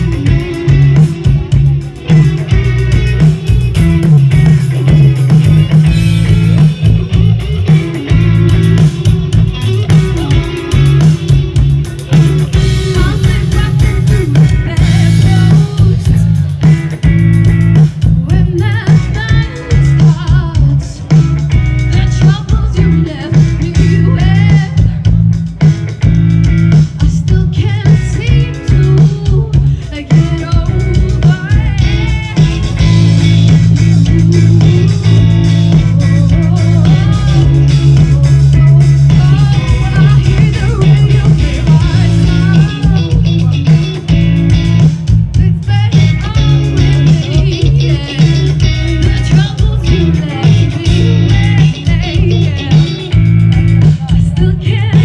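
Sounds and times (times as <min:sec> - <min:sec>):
heavy bass: 0:00.0 - 0:55.0
live band playing: 0:00.0 - 0:55.0
woman singing: 0:07.1 - 0:16.5, 0:18.1 - 0:25.2, 0:27.0 - 0:33.3, 0:33.9 - 0:44.0, 0:45.3 - 0:55.0.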